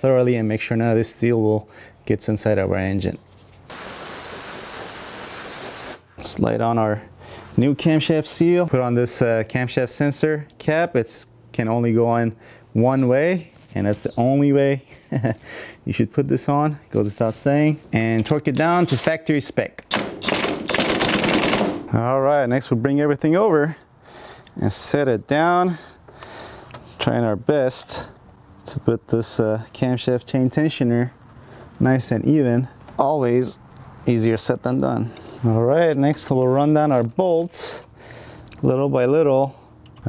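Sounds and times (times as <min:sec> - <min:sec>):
aerosol spray hiss: 0:03.7 - 0:06.1
impact driver hammering: 0:19.9 - 0:21.9.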